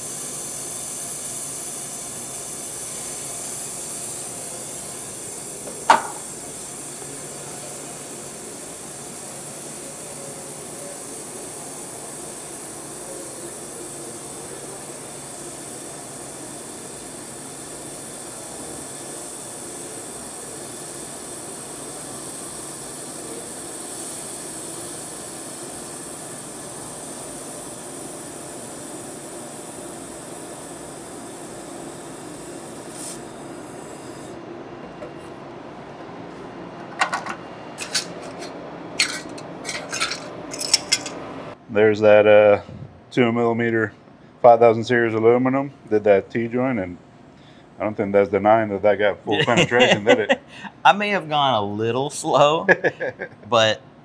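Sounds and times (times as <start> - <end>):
laser welder hissing: 0.0 - 34.5, 49.4 - 50.5.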